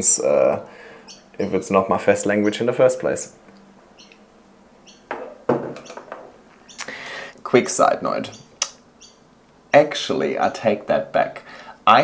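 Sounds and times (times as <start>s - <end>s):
glass set down on desk: 5.1s - 6.3s.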